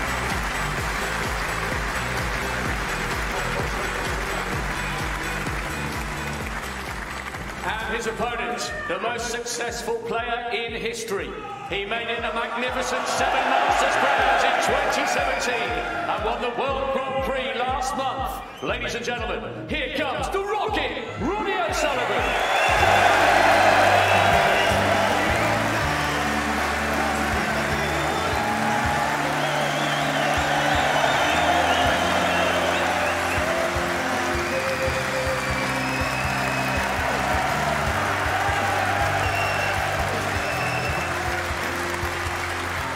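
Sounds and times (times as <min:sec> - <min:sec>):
crowd cheering and applauding: 0:00.0 - 0:09.0, 0:11.8 - 0:17.0, 0:21.6 - 0:42.9.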